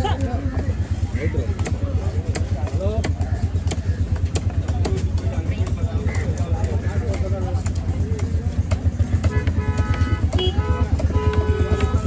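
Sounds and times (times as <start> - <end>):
cleaver chopping on wooden block: 1.6 - 5.8, 6.7 - 12.0.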